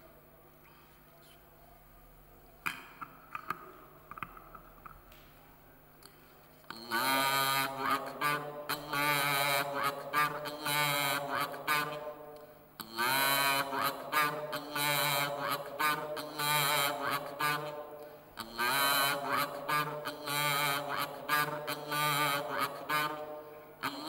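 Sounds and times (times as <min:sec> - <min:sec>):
man chanting recitation: 0:06.7 - 0:12.1, 0:12.8 - 0:17.8, 0:18.4 - 0:23.2.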